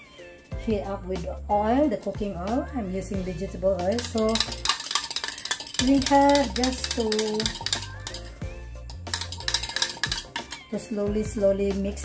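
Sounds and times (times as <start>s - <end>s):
background music with beat: 2.3s - 12.0s.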